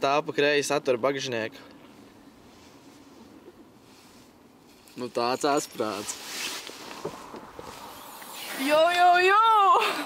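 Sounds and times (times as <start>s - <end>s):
brief rustle: 3.9s - 8.7s
faint footsteps: 5.7s - 8.3s.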